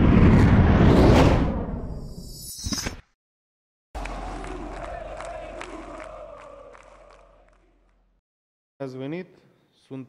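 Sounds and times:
stadium crowd cheering and chanting: 4.0 - 8.2.

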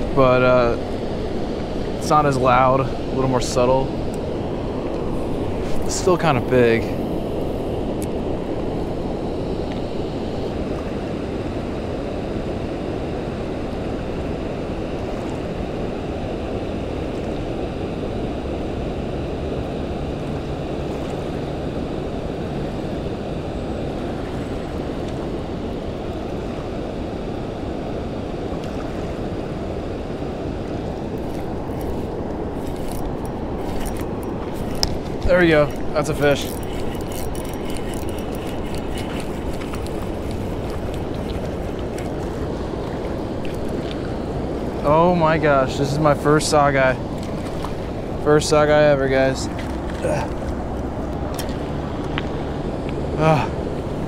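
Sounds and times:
river water rushing: 0.0 - 54.0
wind: 0.0 - 54.0.

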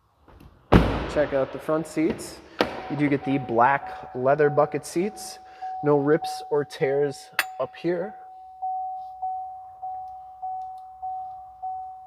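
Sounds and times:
car warning chime dinging: 3.1 - 12.0.

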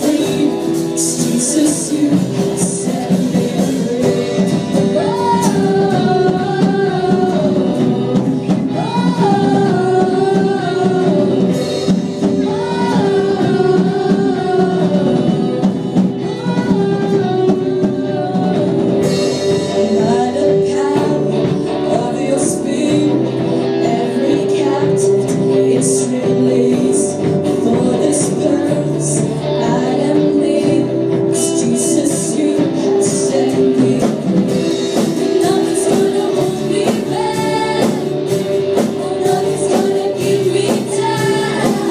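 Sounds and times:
band playing: 0.0 - 41.9
bass guitar: 0.0 - 41.9
drum kit: 0.0 - 41.9
keyboard: 0.0 - 41.9
women singing: 0.0 - 41.9.

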